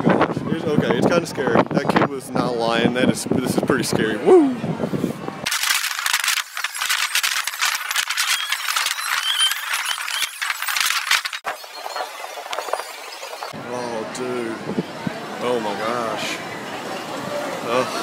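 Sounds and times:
wind rushing across microphone: 0:00.0 - 0:05.5, 0:11.4 - 0:15.5
riders squealing: 0:08.1 - 0:13.5.

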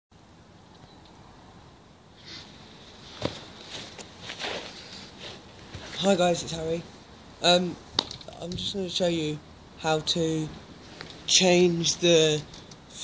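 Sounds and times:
faint outdoor hiss: 0:00.1 - 0:13.0
rustling: 0:02.2 - 0:06.2
footsteps on grass: 0:03.0 - 0:06.1.

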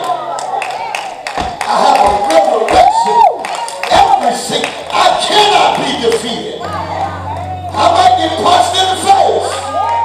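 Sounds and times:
congregation noise: 0:01.3 - 0:10.0.

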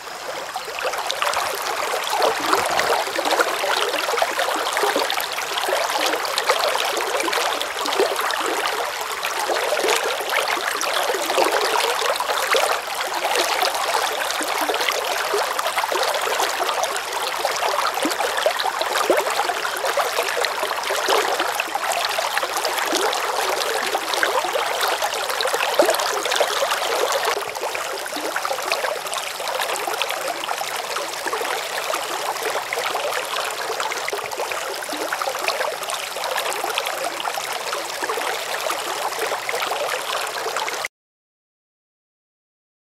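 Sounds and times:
stream rushing and gurgling: 0:00.0 - 0:40.6.

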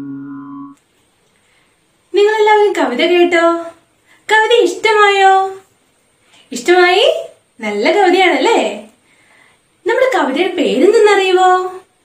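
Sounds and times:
man singing long note: 0:00.0 - 0:00.8.

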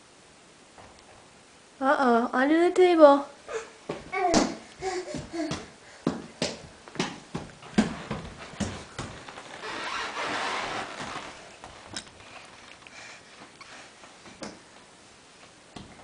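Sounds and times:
knocks on hardwood floor: 0:03.9 - 0:09.3
rustling: 0:07.4 - 0:16.0.

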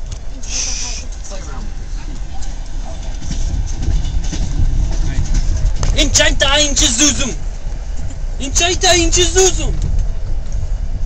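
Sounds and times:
faint voices: 0:00.0 - 0:03.8
train rumbling on rails: 0:00.0 - 0:11.0.

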